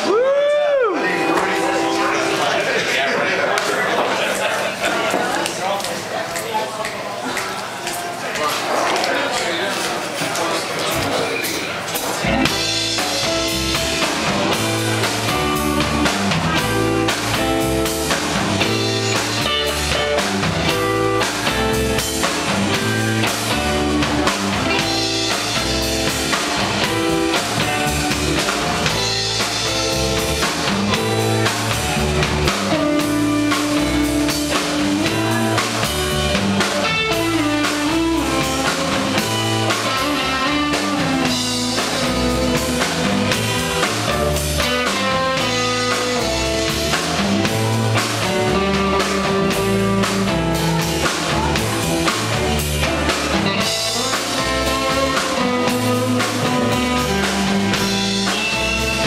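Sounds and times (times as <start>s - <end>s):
drum kit: 0.0s - 2.6s, 10.4s - 59.0s
bass guitar: 0.0s - 3.0s, 12.0s - 59.0s
electric guitars: 0.0s - 5.6s, 10.8s - 59.0s.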